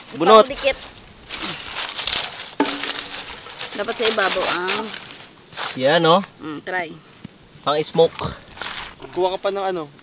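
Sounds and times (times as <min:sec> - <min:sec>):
coconut husk crinkling and rustling: 0:00.0 - 0:10.0.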